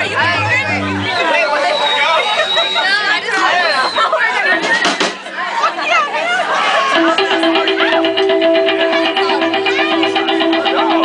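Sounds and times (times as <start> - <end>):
audience voices chattering: 0.0 - 11.0.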